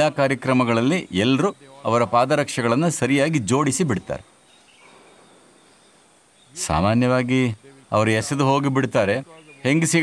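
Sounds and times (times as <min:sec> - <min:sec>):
man speaking: 0:00.0 - 0:04.3, 0:06.6 - 0:10.0
outdoor background noise: 0:00.0 - 0:10.0.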